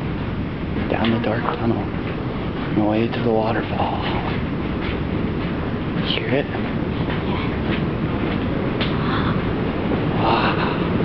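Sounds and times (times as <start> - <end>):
waterfall roaring in a tunnel: 0.0 - 11.0.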